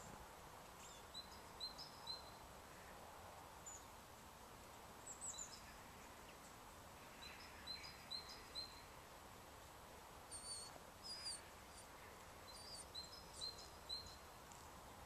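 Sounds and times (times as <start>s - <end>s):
faint bird chirps: 5.0s - 9.0s, 10.3s - 14.3s.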